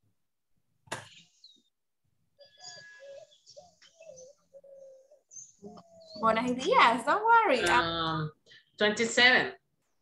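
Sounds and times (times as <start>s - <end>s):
bird calling faintly: 1.0s - 6.8s.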